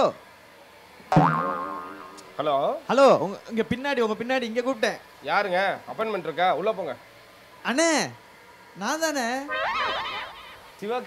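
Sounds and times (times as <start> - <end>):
comic boing sound effect: 1.1 - 2.4, 9.5 - 10.6.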